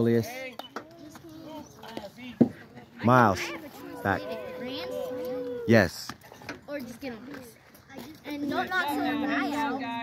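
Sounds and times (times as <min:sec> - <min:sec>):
faint voices of players and spectators: 0:00.0 - 0:10.0.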